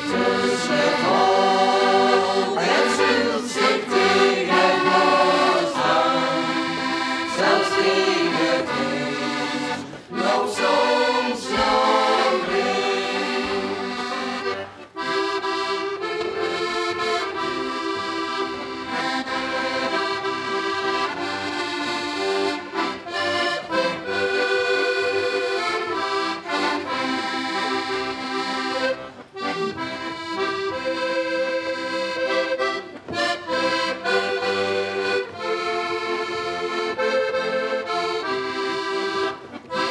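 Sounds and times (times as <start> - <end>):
button accordions playing folk tune: 0.0 - 39.9.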